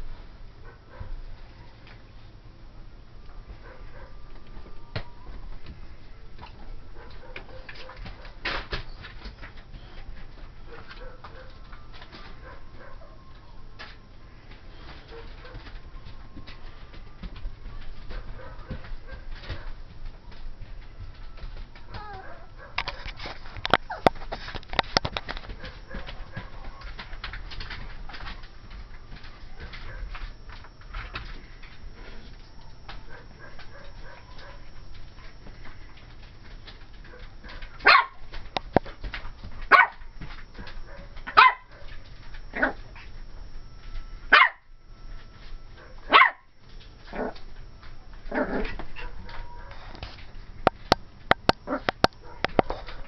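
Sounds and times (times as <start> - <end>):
puppy barking: 3.6 - 4.2, 7.0 - 8.4, 10.7 - 11.6, 18.1 - 19.8, 21.9 - 23.1, 33.1 - 34.6, 37.1 - 38.2, 39.7 - 40.0, 40.6 - 42.8, 44.3 - 44.7, 45.8 - 46.5, 48.4 - 49.9, 51.7 - 53.0.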